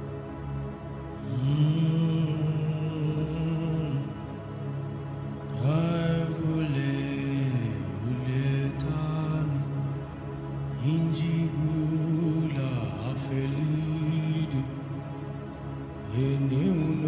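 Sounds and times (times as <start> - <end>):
steady drone: 0.0 - 17.0
man singing chant-like phrases: 5.6 - 9.7, 10.8 - 14.8, 16.2 - 17.0.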